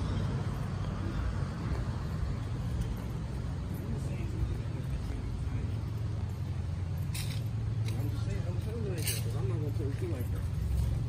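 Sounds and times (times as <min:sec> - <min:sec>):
city street traffic hum: 0:00.0 - 0:11.0.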